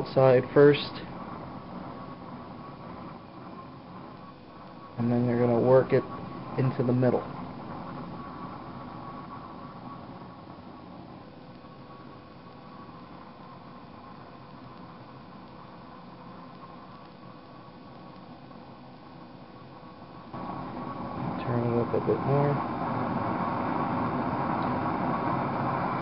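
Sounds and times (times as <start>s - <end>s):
blowtorch flame hissing: 0.0s - 26.0s.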